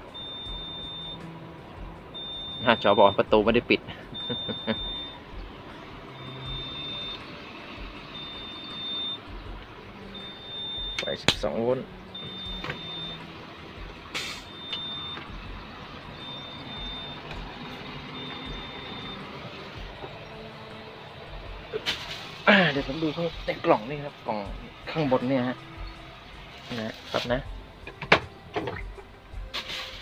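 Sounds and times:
door warning chime beeps: 0:00.0 - 0:01.3, 0:02.1 - 0:03.4, 0:04.2 - 0:05.3, 0:06.1 - 0:07.3, 0:08.1 - 0:09.3, 0:10.1 - 0:11.4, 0:12.0 - 0:13.4, 0:14.4 - 0:15.4, 0:16.0 - 0:17.4, 0:18.1 - 0:19.3.

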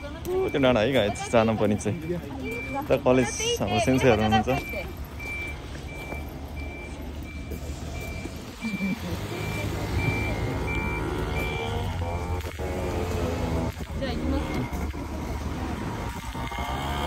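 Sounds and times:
reversing alarm beeping: 0:00.0 - 0:13.6.

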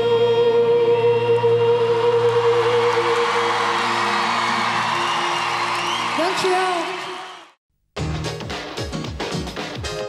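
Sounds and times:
crowd cheering: 0:02.4 - 0:07.6
rising whistles: 0:03.8 - 0:06.2.

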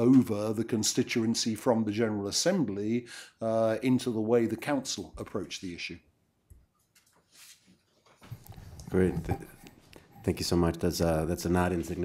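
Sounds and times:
person speaking: 0:00.0 - 0:06.1, 0:08.4 - 0:12.0.

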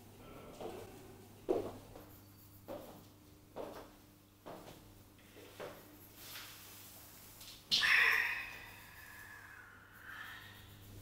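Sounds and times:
footsteps on hard floor: 0:01.5 - 0:02.1, 0:03.6 - 0:04.8.

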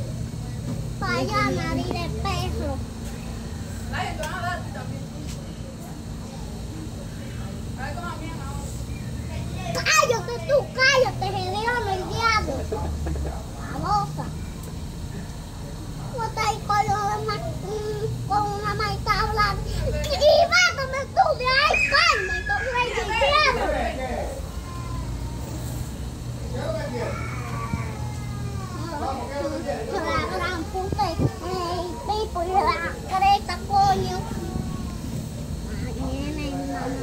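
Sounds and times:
girl singing: 0:16.3 - 0:19.6.

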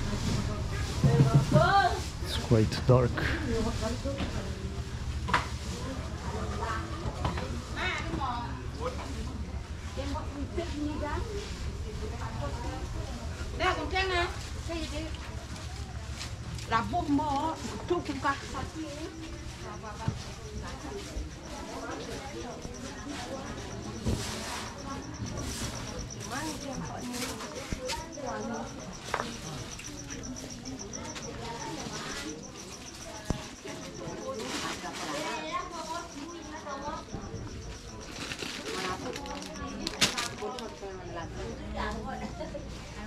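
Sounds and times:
people talking: 0:00.0 - 0:43.0.

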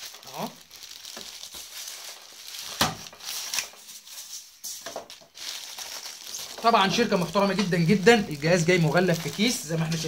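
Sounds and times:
plastic bag crinkling: 0:00.0 - 0:10.0
polystyrene foam rubbing: 0:00.0 - 0:10.0.

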